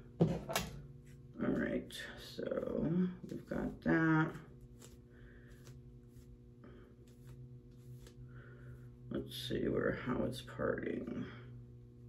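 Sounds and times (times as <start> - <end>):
low steady hum: 0.0 - 12.0
wig hair rustling: 2.4 - 9.0.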